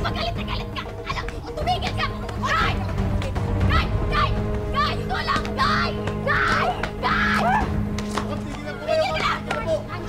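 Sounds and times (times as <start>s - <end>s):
background music: 0.0s - 10.0s
voices shrieking and yelling: 3.6s - 7.8s.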